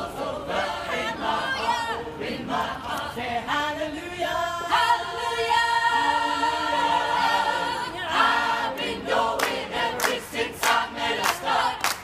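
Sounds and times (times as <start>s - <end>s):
choir singing a cappella: 0.0s - 12.0s
rhythmic hand-clapping: 8.7s - 12.0s.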